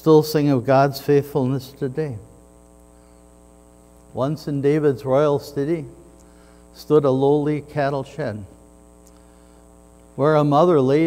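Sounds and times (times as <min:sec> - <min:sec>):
man speaking: 0:00.0 - 0:02.3, 0:04.1 - 0:06.1, 0:06.8 - 0:08.6, 0:10.2 - 0:11.0.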